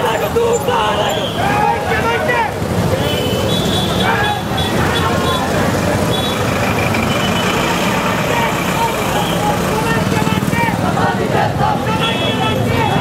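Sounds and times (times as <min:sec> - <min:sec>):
crowd shouting: 0:00.0 - 0:13.0
vehicle engines passing close: 0:00.0 - 0:13.0.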